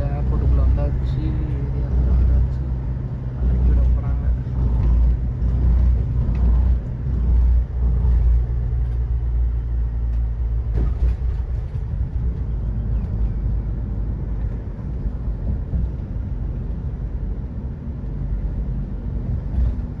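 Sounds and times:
van engine and road rumble: 0:00.0 - 0:20.0.

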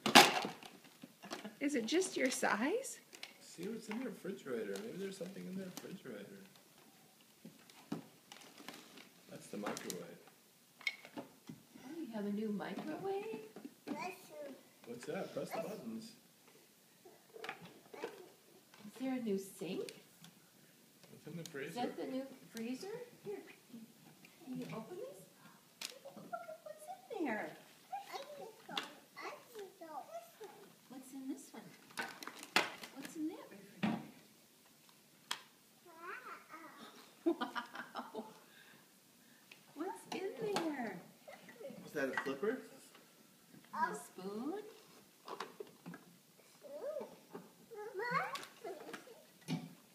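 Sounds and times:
toddler vocalizing: 0:35.9 - 0:37.1, 0:46.5 - 0:49.3.

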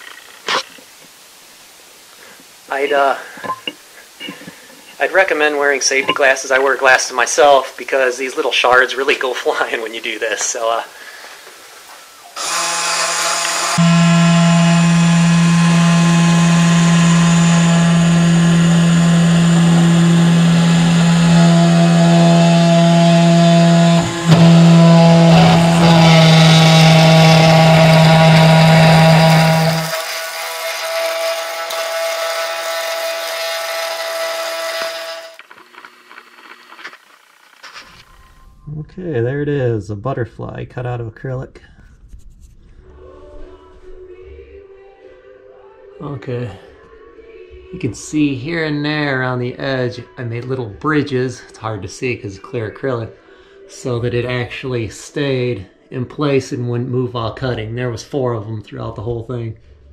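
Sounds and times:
machine motors changing tone: 0:12.4 - 0:37.6
spindle motor whining: 0:12.4 - 0:37.6.

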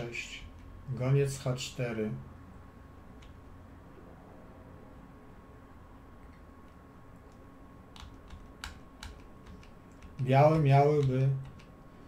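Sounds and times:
computer mouse clicks: 0:03.2 - 0:03.4, 0:06.2 - 0:11.8.

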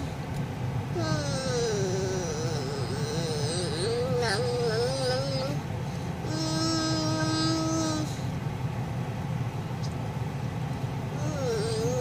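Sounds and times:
low rumble in car cabin: 0:00.0 - 0:12.0
child's sing-song voice: 0:01.0 - 0:05.6, 0:06.3 - 0:08.2.

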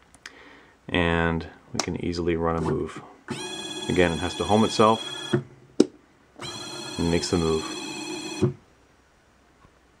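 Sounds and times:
actuator motor whining: 0:03.3 - 0:05.5, 0:06.4 - 0:08.6.

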